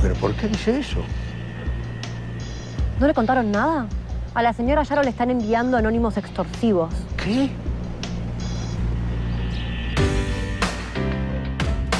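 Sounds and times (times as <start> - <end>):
dramatic music drone: 0.0 - 11.9.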